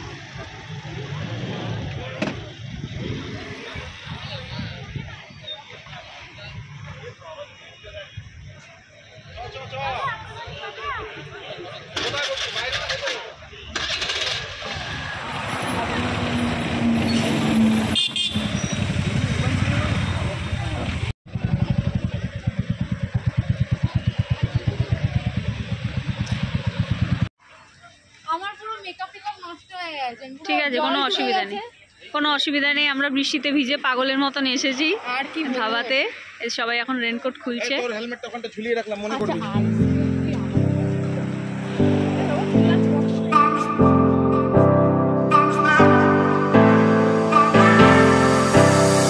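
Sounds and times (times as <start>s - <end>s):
crowd chatter: 0.0s - 16.5s, 38.9s - 49.0s
low rumble of road traffic: 0.0s - 27.3s, 28.6s - 43.3s
vehicle noise: 0.0s - 27.3s, 39.0s - 49.0s.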